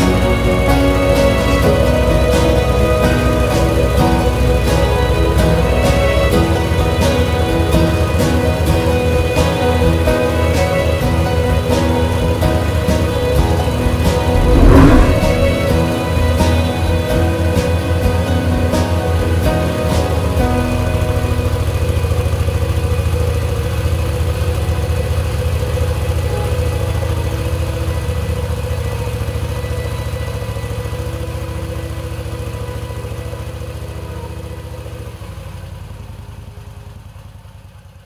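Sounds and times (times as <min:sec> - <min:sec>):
music: 0:00.0 - 0:35.2.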